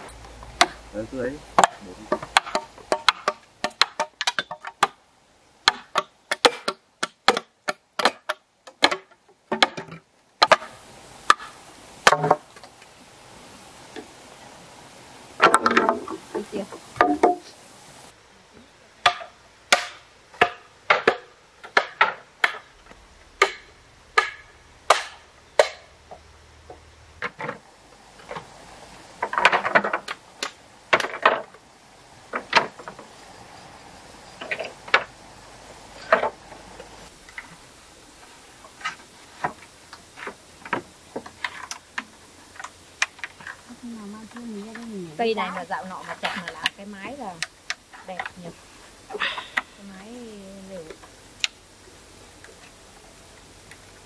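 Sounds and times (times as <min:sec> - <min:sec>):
bamboo poles clattering: 0:00.0 - 0:05.0, 0:05.6 - 0:13.0, 0:15.4 - 0:17.6, 0:19.0 - 0:33.2, 0:34.3 - 0:35.2, 0:35.9 - 0:37.6, 0:38.2 - 0:51.6
machete chopping bamboo: 0:01.6 - 0:05.0, 0:05.6 - 0:12.4, 0:19.0 - 0:22.7, 0:23.4 - 0:25.9.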